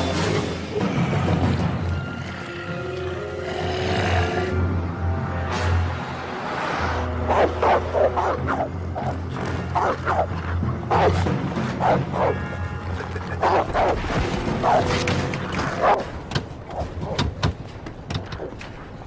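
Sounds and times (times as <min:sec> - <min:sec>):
film music score: 0:00.0 - 0:19.0.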